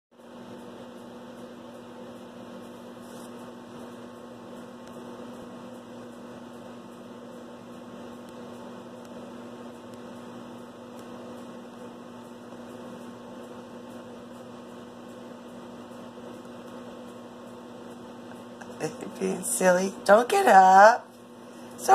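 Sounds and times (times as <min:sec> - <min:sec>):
electrical hum: 0:00.2 - 0:21.9.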